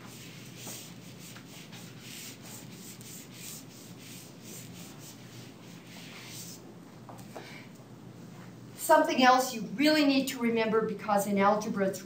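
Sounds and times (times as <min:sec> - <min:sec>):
scratchy rubbing on classroom board: 0:00.0 - 0:06.6.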